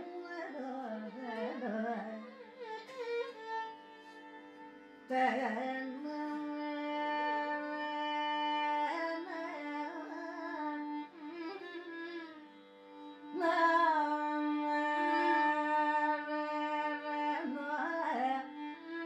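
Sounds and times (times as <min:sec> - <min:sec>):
woman singing classical song: 0:00.0 - 0:02.4, 0:05.1 - 0:11.1, 0:13.3 - 0:19.0
violin accompaniment: 0:00.0 - 0:19.0.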